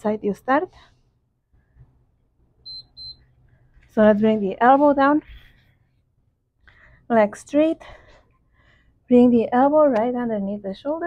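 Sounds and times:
high-pitched electronic beeps: 2.7s - 3.2s.

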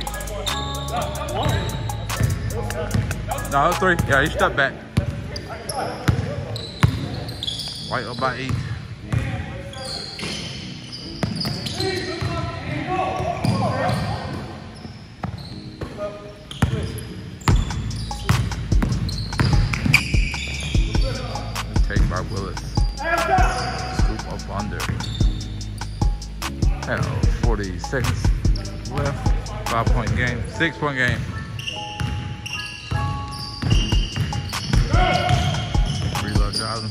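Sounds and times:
players calling out: 0.0s - 4.5s, 16.9s - 36.9s
background music with steady beat: 0.0s - 4.8s, 17.5s - 36.9s
basketball bouncing on hardwood: 18.3s - 21.0s, 33.6s - 36.4s.

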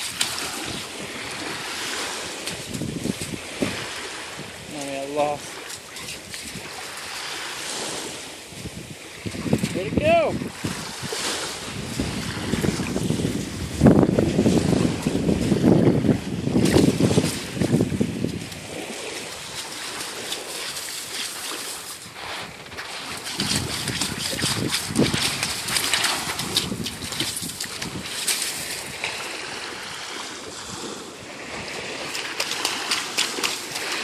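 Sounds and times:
small waves lapping: 0.0s - 34.0s
wind on microphone: 0.0s - 34.0s
dog digging in wet sand: 4.8s - 8.1s, 16.6s - 29.1s, 31.9s - 34.0s.

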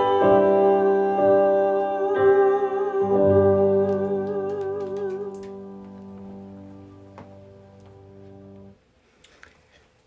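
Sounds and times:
woman singing with vibrato: 0.0s - 5.8s
instrumental backing music: 0.0s - 8.8s.

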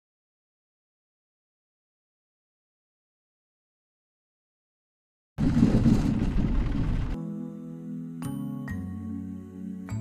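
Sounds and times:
mobility scooter rolling on boardwalk: 5.4s - 7.2s.

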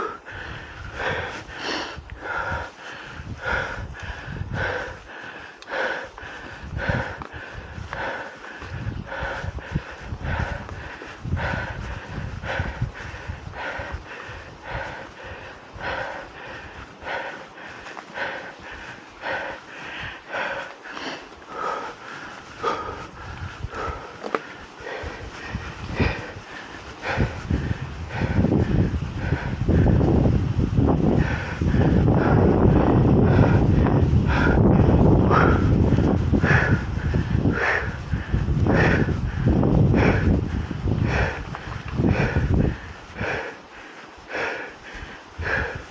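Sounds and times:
person breathing hard: 0.0s - 45.9s
wind rush on microphone: 0.0s - 45.9s.

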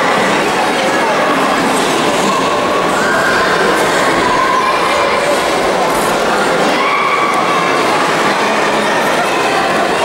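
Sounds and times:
crowd din in sports hall: 0.0s - 10.0s.

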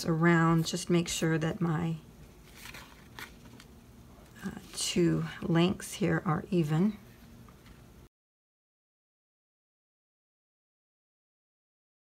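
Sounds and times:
ribbon and cardstock rustling: 2.4s - 5.6s.

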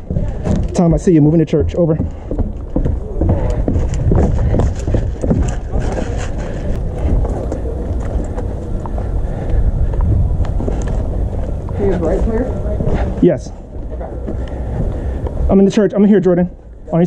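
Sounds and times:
running footsteps on grass: 0.0s - 11.9s
running footsteps on wooden stairs: 0.0s - 15.7s.

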